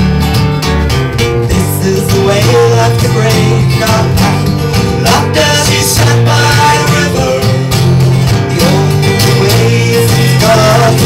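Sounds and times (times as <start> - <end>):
acoustic guitars playing folk song: 0.0 - 11.0.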